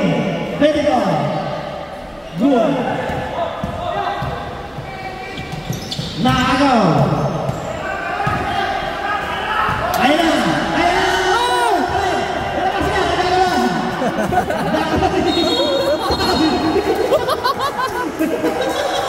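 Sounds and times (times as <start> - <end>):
sneakers squeaking: 1.2 - 19.0
basketball bouncing: 3.0 - 8.6.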